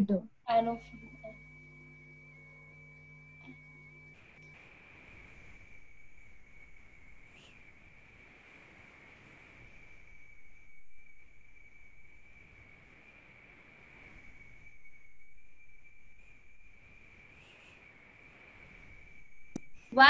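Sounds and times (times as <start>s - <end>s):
high-pitched whine: 0.0s - 20.0s
low hiss: 0.0s - 20.0s
soft swells of noise: 0.8s - 20.0s.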